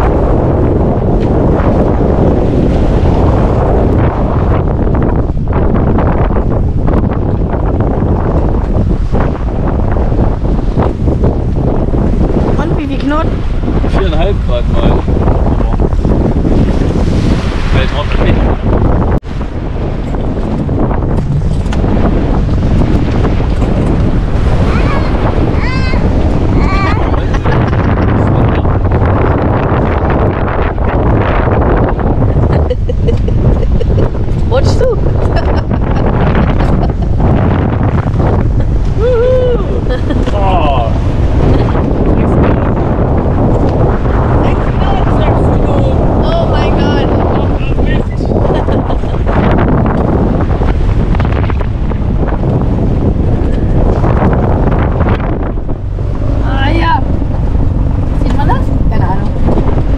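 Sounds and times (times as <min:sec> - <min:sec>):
choppy water rushing: 0:00.0 - 0:59.9
wind buffeting microphone: 0:00.0 - 0:59.9.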